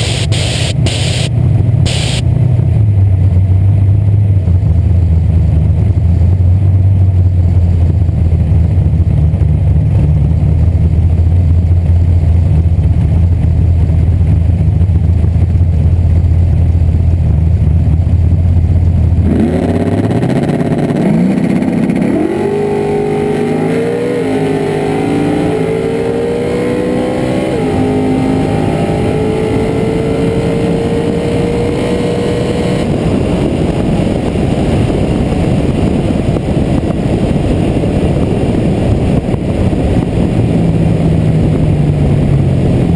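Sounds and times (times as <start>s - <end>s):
car engine revving through gears: 0.0s - 1.3s, 1.9s - 2.2s, 19.2s - 33.0s
wind and coasting noise: 0.0s - 42.9s.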